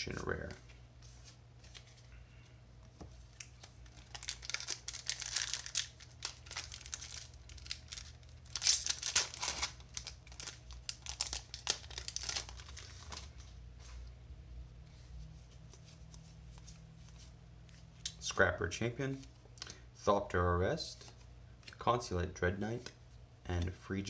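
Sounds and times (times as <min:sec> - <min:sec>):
steady low hum: 0:00.0 - 0:24.0
foil wrapper tearing and crinkling: 0:03.9 - 0:13.2.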